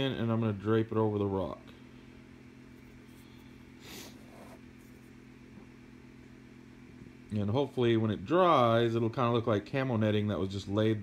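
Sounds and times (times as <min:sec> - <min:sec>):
low electrical motor hum: 0:00.0 - 0:11.0.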